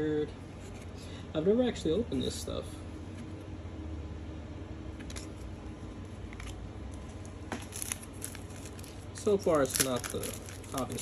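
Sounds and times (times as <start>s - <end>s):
steady low hum: 0.0s - 11.0s
trading cards clicking: 6.3s - 11.0s
plastic wrapper tearing: 6.4s - 11.0s.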